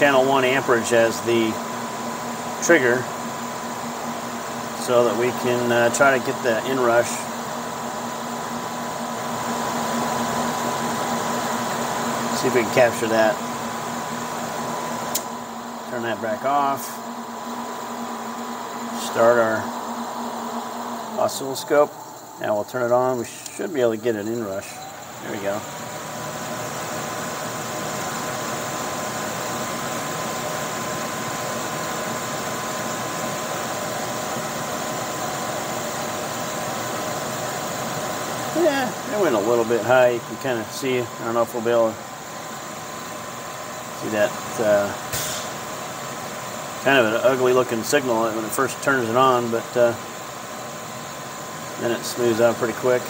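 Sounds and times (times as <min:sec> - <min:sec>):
electric fan running: 0:00.0 - 0:53.0
electrical machinery hum: 0:00.0 - 0:53.0
sharp click: 0:15.1 - 0:15.3.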